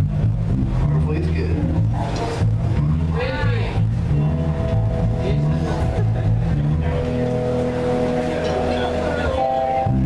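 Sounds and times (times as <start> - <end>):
live band instrumental jam: 0.0 - 10.0.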